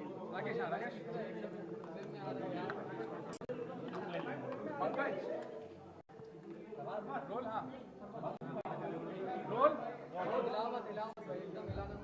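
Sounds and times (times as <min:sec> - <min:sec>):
chatter of several voices: 0:00.0 - 0:12.0.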